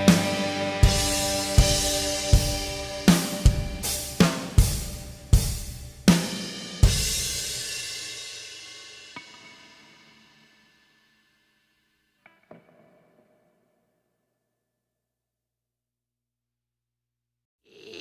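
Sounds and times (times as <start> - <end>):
drum kit strikes: 0.0 - 10.4
cymbal crashes ringing: 0.0 - 12.0.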